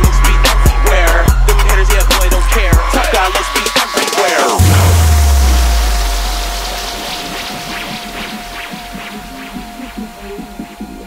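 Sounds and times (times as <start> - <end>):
held high tone: 0.1 - 11.0
hiss-like noise: 3.0 - 11.0
deep bass note: 4.6 - 11.0.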